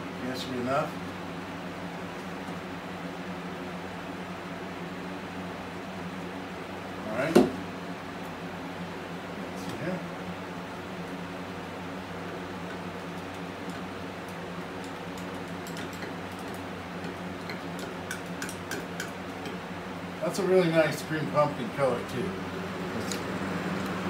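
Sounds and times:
machine hum: 0.0s - 24.0s.

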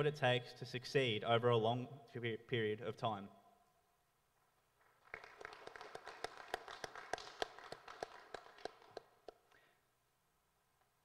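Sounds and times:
sparse audience clapping: 4.7s - 9.6s.

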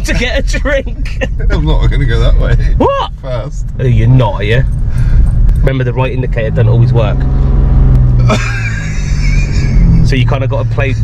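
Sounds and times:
car engine drone inside cabin: 0.0s - 11.0s.

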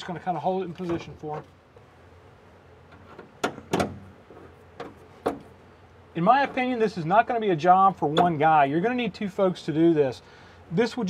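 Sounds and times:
car panel knocks and bumps: 3.0s - 5.6s.

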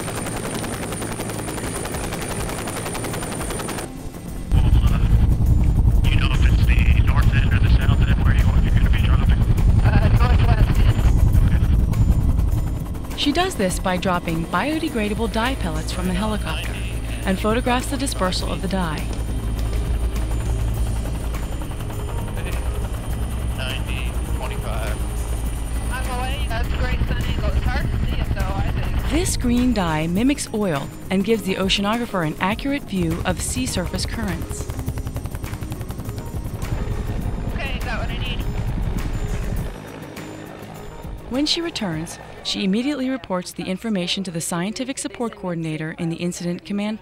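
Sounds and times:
turbine whine: 0.0s - 43.9s
helicopter in flight rumble: 0.0s - 47.0s
helicopter rotor beat: 0.0s - 47.0s.

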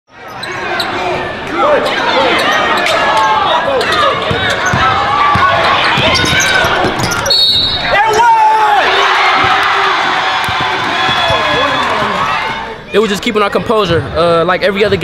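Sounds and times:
crowd voices: 0.1s - 15.0s.

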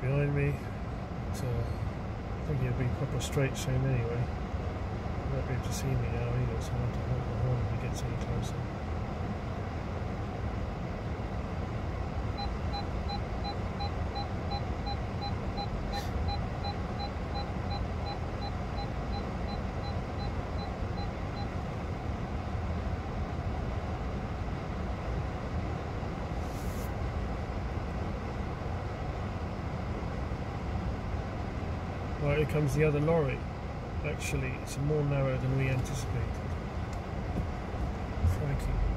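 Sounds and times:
short electronic beeps: 12.4s - 21.5s.

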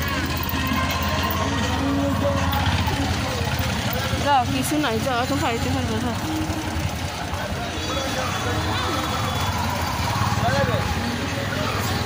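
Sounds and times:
small engine idling: 0.0s - 12.0s.

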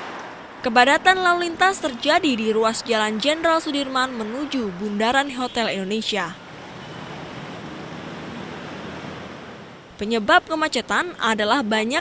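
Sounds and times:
city traffic rushing: 0.0s - 12.0s.

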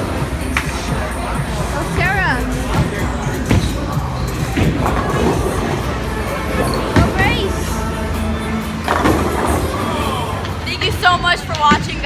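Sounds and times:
background music: 0.0s - 12.0s
people chattering: 0.0s - 12.0s.

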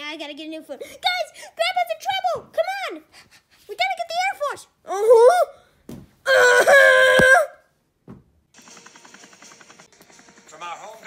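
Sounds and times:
young person crying out: 4.9s - 5.6s, 6.3s - 7.6s
faint video sound from computer: 8.6s - 11.0s.

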